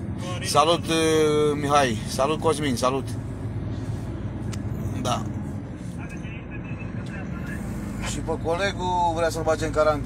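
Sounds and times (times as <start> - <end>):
truck engine droning: 0.0 - 10.0.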